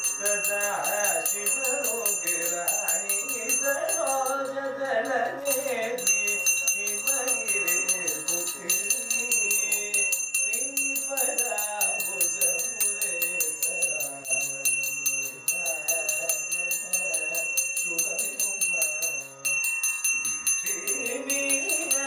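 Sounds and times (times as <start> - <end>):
brass handbell rung rapidly: 0.0 - 22.0
man singing devotional song: 0.0 - 22.0.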